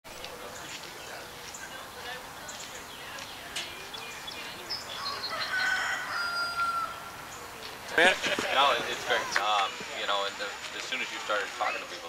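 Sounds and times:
rooster crowing: 4.9 - 7.2.

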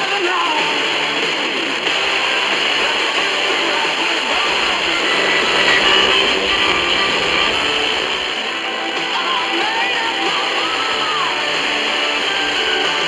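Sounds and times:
distant radio music: 0.0 - 13.0
static hiss: 0.8 - 9.3.

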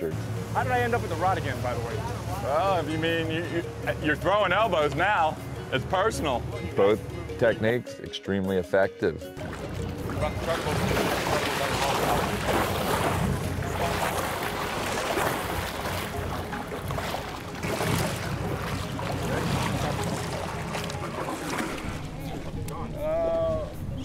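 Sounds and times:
water splashing around hull: 0.0 - 6.8, 9.3 - 24.0
boat engine running: 0.0 - 7.7, 9.2 - 24.0.

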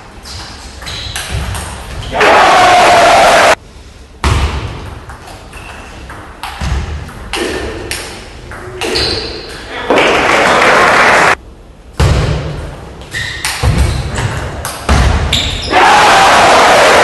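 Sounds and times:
crowd shouting: 2.1 - 3.6, 15.7 - 17.0.

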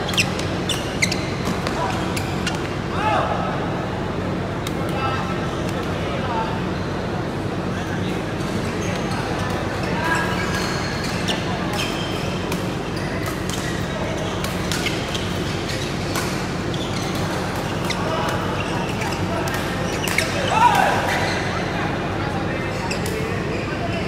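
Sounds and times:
shoe squeak or call: 0.1 - 2.7, 8.8 - 21.6, 22.7 - 24.0.

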